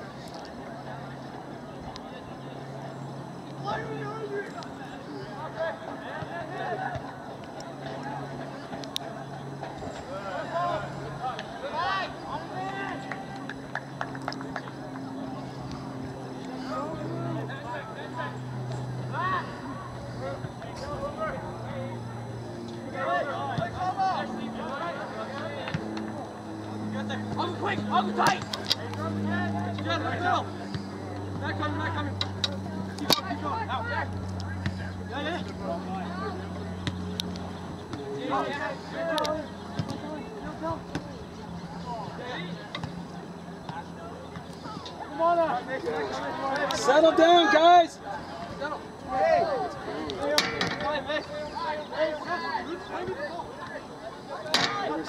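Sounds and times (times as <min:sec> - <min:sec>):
people calling and shouting: 0:00.0 - 0:55.0
steady low hum: 0:00.0 - 0:55.0.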